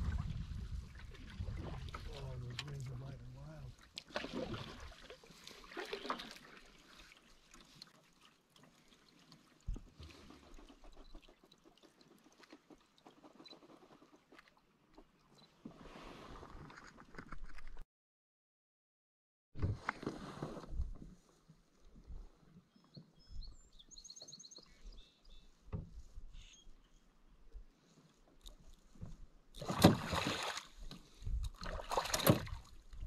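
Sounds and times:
paddle strokes and water splashes: 0:00.0 - 0:17.6, 0:19.6 - 0:23.2, 0:24.2 - 0:33.0.

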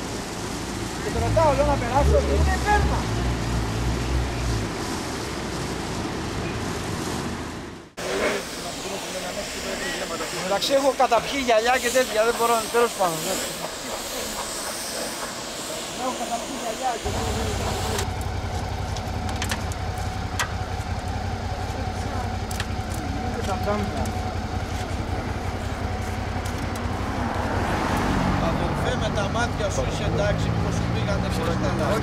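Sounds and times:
low vehicle rumble: 0:00.0 - 0:10.3, 0:17.0 - 0:32.0
voices talking: 0:01.0 - 0:04.5, 0:08.0 - 0:32.0.

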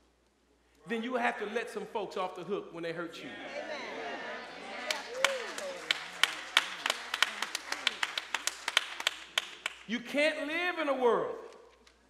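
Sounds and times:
people clapping: 0:03.5 - 0:09.9.

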